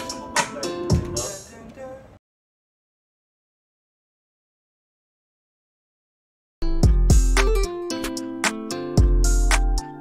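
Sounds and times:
hip-hop beat: 0.0s - 1.6s, 6.6s - 10.0s.

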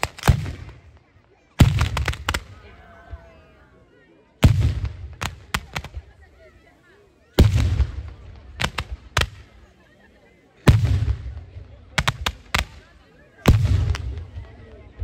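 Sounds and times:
firework blasts: 0.0s - 3.2s, 4.4s - 6.5s, 7.3s - 10.0s, 10.6s - 14.7s
faint crowd voices: 0.0s - 15.0s
firework crackling: 4.4s - 6.4s, 7.4s - 9.8s.

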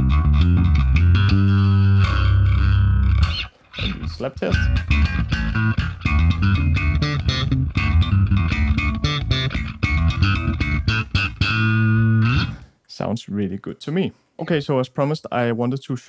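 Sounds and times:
electric bass guitar notes: 0.0s - 12.7s.

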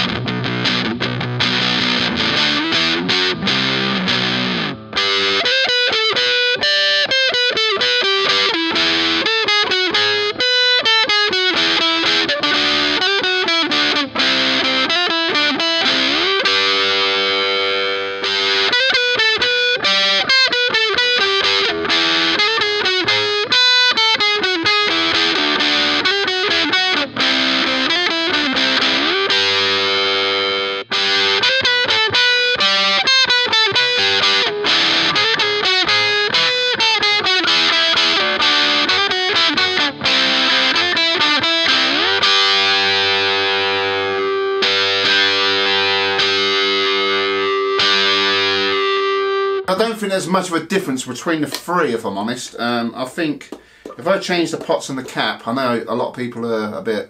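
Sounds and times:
distorted electric guitar riffs: 0.0s - 57.0s.

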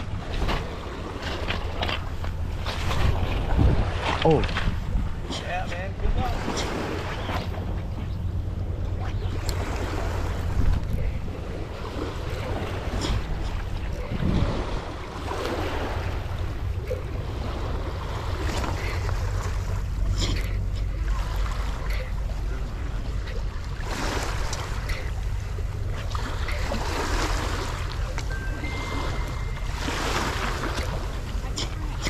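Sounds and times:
water washing along shore: 0.0s - 32.0s
wind rumbling on microphone: 0.0s - 32.0s.

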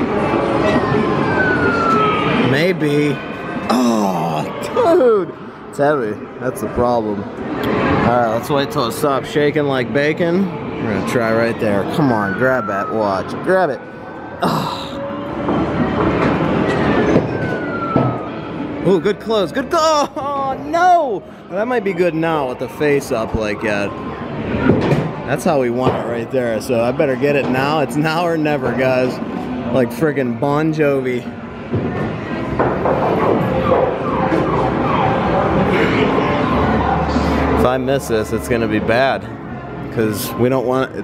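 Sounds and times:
busy arcade noise: 0.0s - 41.0s.

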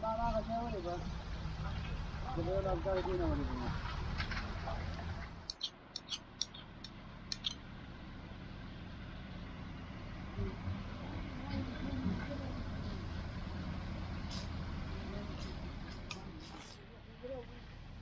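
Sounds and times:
low outdoor rumble: 0.0s - 18.0s
sharp clicks: 5.4s - 7.6s.

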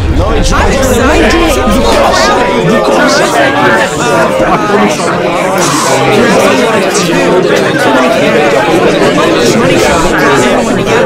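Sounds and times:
overlapping voices talking: 0.0s - 11.0s.

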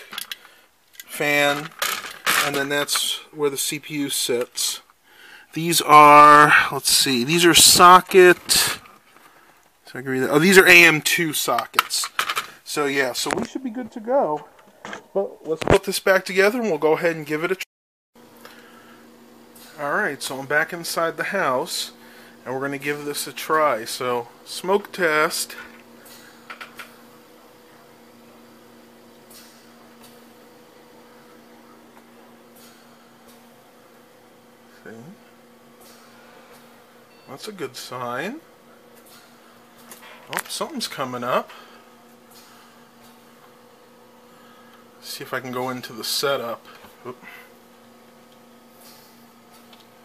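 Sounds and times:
desktop computer humming: 0.0s - 17.3s
computer fans humming: 0.0s - 17.6s, 18.2s - 50.0s.

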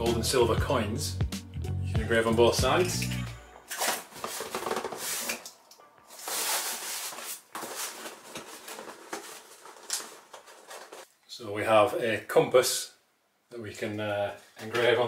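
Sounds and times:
quiet background music: 0.0s - 9.4s
cardboard box rustling and scraping: 3.8s - 5.4s, 6.1s - 11.1s.

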